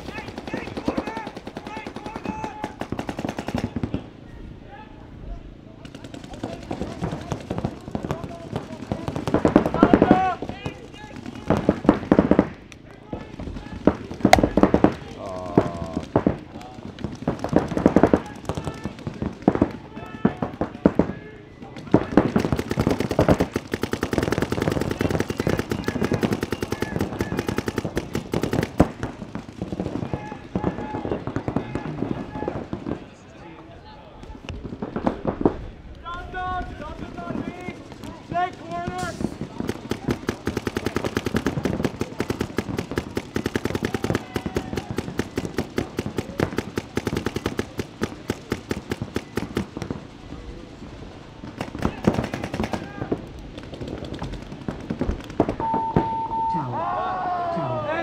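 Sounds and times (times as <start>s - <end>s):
people shouting: 0.0s - 3.6s, 9.5s - 11.8s, 17.7s - 28.7s, 29.8s - 32.7s, 38.3s - 49.6s, 51.7s - 53.2s, 56.7s - 58.0s
paintball markers firing: 0.0s - 4.0s, 5.8s - 33.0s, 34.2s - 50.0s, 51.5s - 55.8s.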